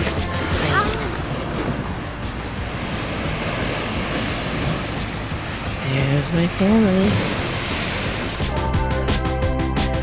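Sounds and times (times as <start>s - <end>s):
steady rushing noise: 0.0s - 9.4s
soft background music: 0.0s - 10.0s.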